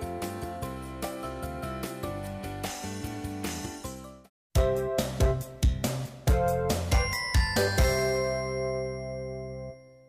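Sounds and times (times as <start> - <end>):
jingle closing chord: 6.4 - 10.0.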